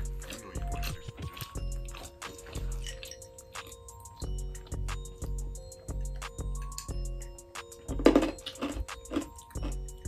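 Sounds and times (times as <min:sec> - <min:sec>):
background music with steady beat: 0:00.0 - 0:10.0.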